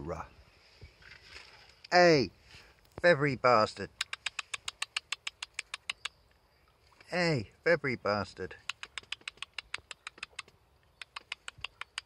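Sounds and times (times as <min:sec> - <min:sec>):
person clicking tongue: 0:03.9 - 0:06.2, 0:08.6 - 0:12.0.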